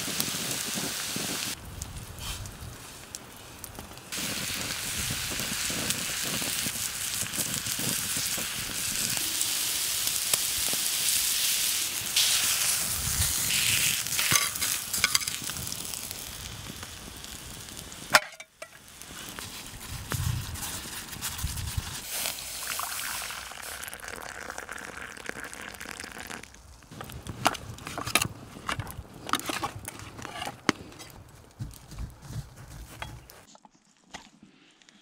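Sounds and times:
steak sizzling: 0.0 - 1.6, 4.1 - 20.5, 21.7 - 26.3.

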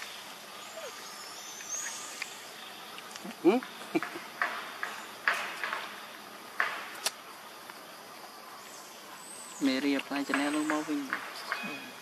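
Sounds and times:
insect drone: 0.0 - 12.0.

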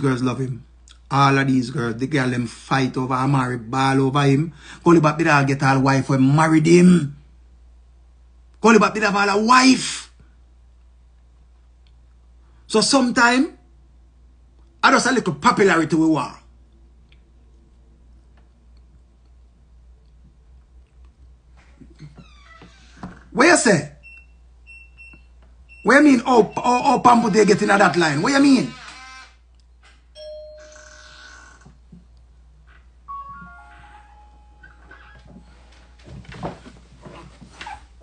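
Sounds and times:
electronic chime tones: 30.2 - 31.3, 33.1 - 35.0.

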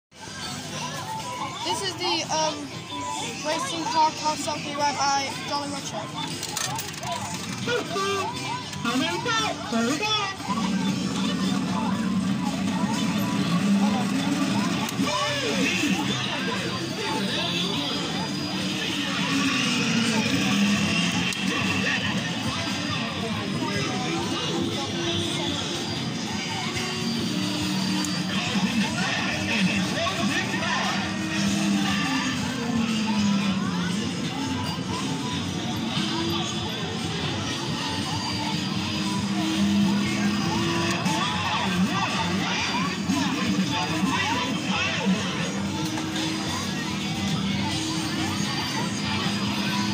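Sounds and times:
arcade chatter: 0.1 - 49.9
kiddie ride playing song: 0.2 - 49.9.

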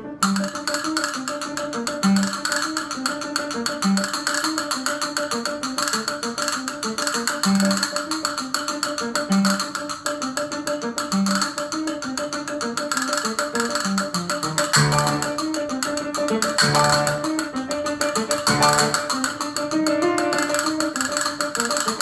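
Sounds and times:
instrumental accompaniment: 0.0 - 22.0
castanets rolling clicks: 12.7 - 22.0.

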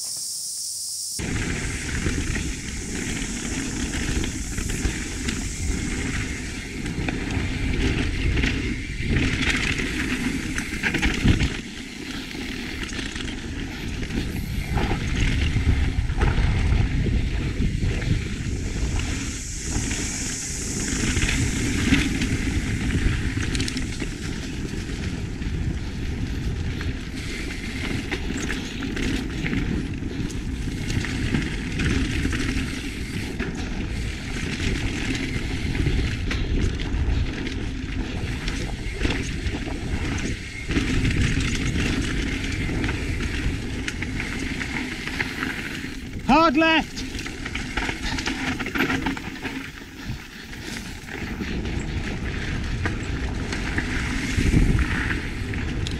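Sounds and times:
bike knocking and rattling: 1.2 - 55.9
tyres rolling on dirt: 1.2 - 55.9
wind rushing past microphone: 1.2 - 55.9.

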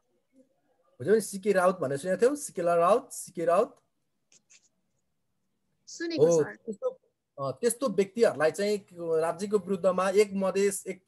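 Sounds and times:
person speaking: 5.9 - 11.0.

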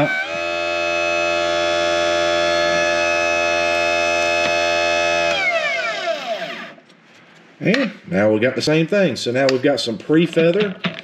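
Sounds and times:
electric motor humming and whining: 0.0 - 6.8.

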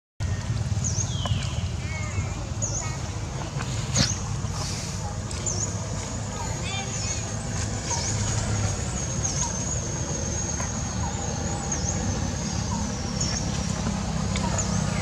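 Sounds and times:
steady low rumble: 0.2 - 15.0.

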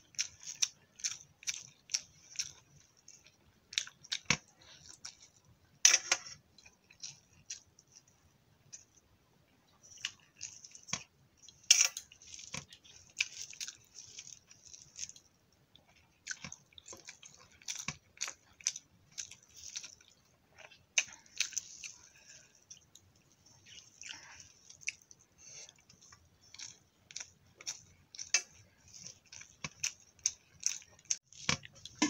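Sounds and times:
chewing: 0.0 - 5.5, 6.5 - 9.0, 9.8 - 32.0
wet squishes of eating by hand: 0.0 - 5.5, 9.8 - 32.0.

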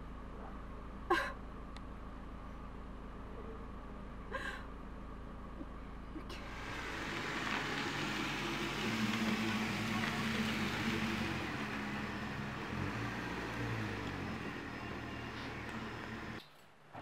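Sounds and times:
car engine running: 0.0 - 16.4
tyres on sandy ground: 0.0 - 17.0.

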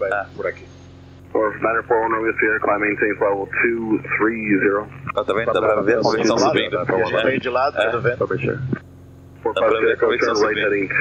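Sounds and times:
low aircraft engine drone: 1.2 - 11.0
voice over aircraft radio: 9.4 - 11.0.

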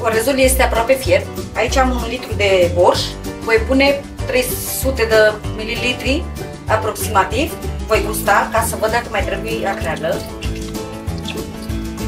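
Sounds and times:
background music: 0.0 - 12.0
liquid pouring into a pot: 9.2 - 12.0.

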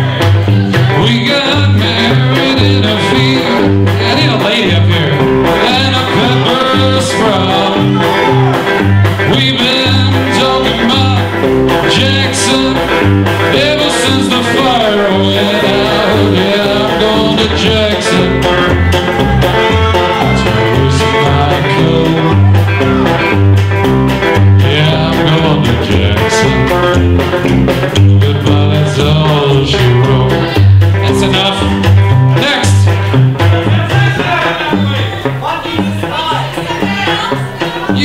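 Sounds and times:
drums: 0.0 - 38.0
electric guitar: 0.0 - 38.0
upright bass: 0.0 - 38.0.

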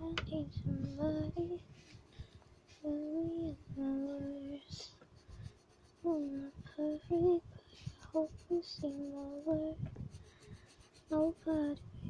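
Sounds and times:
pencil scratching on paper: 2.5 - 11.8.

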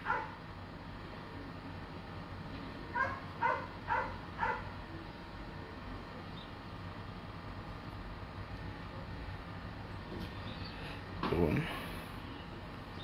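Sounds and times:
dog barking: 0.0 - 0.4, 2.9 - 4.7.

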